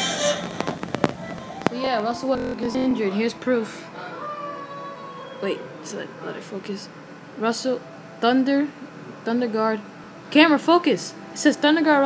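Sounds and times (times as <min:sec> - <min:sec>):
intro music: 0:00.0 - 0:04.0
person speaking: 0:01.4 - 0:03.9.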